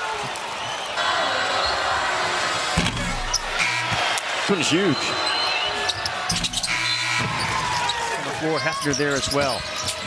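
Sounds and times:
arena crowd noise: 0:00.0 - 0:10.0
sneakers squeaking: 0:05.1 - 0:10.0.

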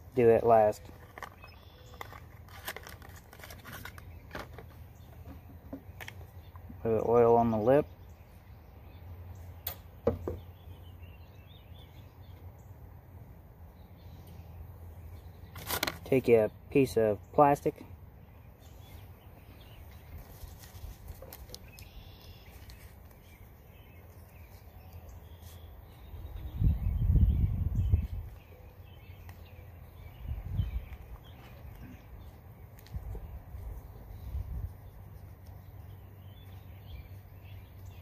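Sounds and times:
plastic sheet rustling: 0:02.0 - 0:04.7.

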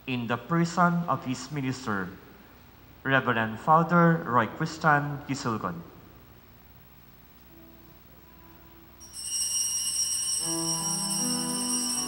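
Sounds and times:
small bell ringing: 0:09.0 - 0:12.0.

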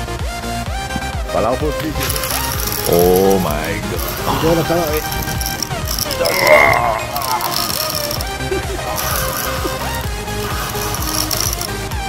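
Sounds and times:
background music: 0:00.0 - 0:12.0
fishing reel clicking and whirring: 0:01.8 - 0:12.0.

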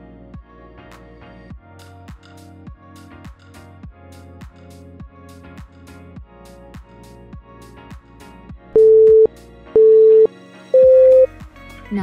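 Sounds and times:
background music with steady beat: 0:00.1 - 0:12.0
loud electronic beeps: 0:08.8 - 0:11.3.

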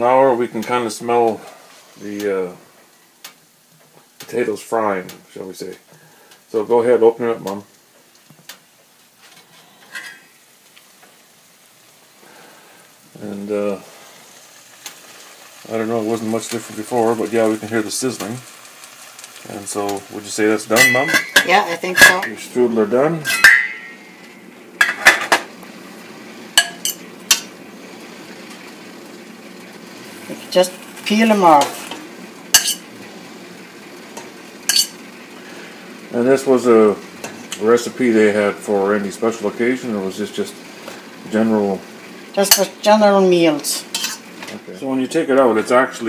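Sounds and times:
potatoes sizzling in a pot: 0:00.0 - 0:46.0
metal lid clink: 0:20.8 - 0:22.4, 0:23.3 - 0:24.1, 0:32.6 - 0:32.8, 0:34.7 - 0:35.0
fork clinking against metal pot: 0:23.3 - 0:24.0, 0:32.6 - 0:32.8, 0:34.7 - 0:35.0.

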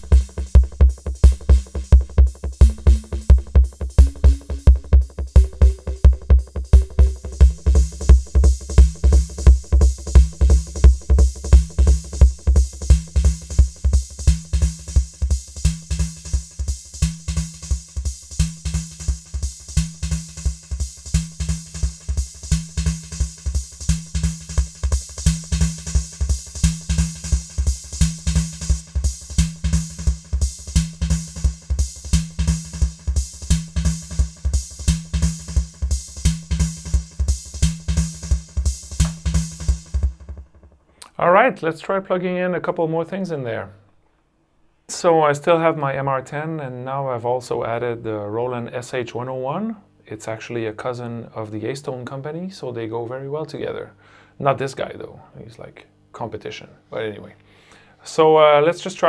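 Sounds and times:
drum machine beat with tape echo: 0:00.0 - 0:41.1.

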